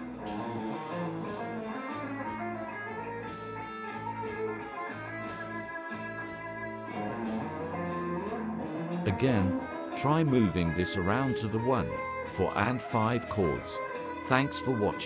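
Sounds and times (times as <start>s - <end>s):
electric guitar single-note lick: 0.0s - 15.0s.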